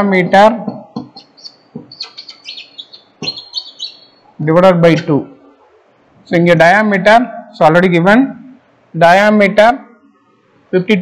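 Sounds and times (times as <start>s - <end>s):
small birds chirping: 0.9s - 4.5s.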